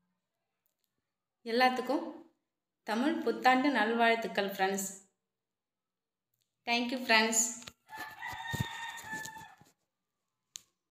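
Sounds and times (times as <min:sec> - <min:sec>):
rooster crowing: 0:07.9 - 0:09.7.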